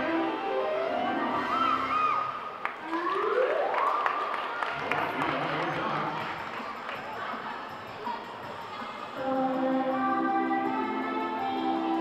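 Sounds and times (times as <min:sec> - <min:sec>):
people clapping: 0:02.6 - 0:07.5
spectators talking: 0:04.4 - 0:09.8.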